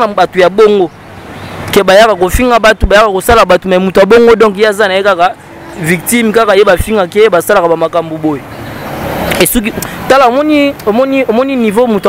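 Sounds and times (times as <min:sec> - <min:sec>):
man speaking: 0:00.0 - 0:01.0, 0:01.7 - 0:08.5, 0:09.3 - 0:12.0.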